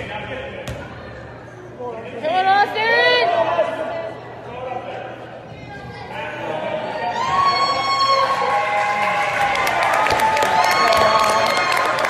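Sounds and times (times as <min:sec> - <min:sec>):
murmur of voices in a gymnasium: 0:00.0 - 0:12.0.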